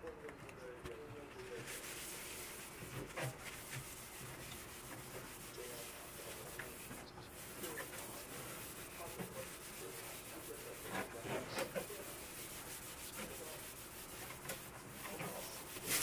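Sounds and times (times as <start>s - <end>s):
cloth scrubbing watermelon rind: 1.5s - 16.0s.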